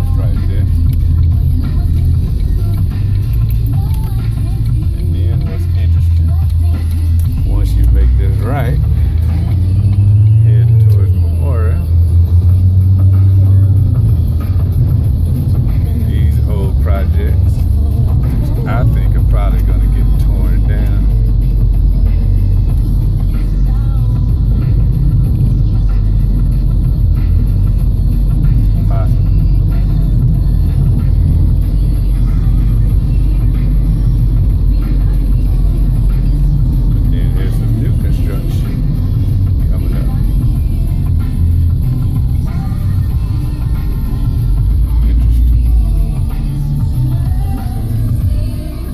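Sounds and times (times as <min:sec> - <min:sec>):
music: 0:00.0 - 0:48.9
road and engine rumble: 0:00.0 - 0:48.9.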